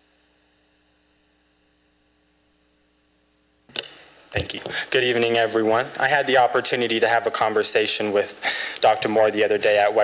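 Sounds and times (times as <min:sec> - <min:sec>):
faint mains hum: 0:00.0 - 0:10.0.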